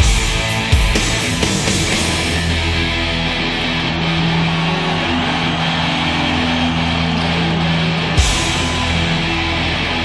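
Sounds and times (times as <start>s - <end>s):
bass guitar: 0.0s - 10.0s
distorted electric guitars: 0.0s - 10.0s
drums: 0.0s - 10.0s.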